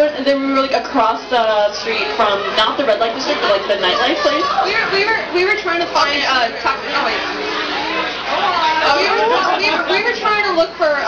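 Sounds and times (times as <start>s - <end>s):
women talking: 0.0s - 7.4s, 8.4s - 11.0s.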